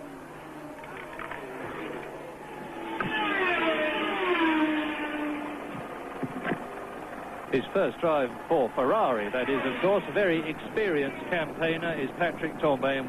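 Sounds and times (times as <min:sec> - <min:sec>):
racing car engines passing: 0:00.4 - 0:13.0.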